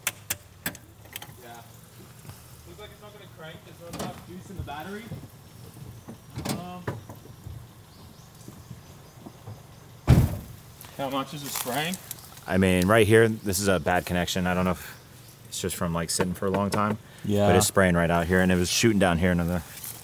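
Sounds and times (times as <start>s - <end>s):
low thump: 9.4s - 10.6s.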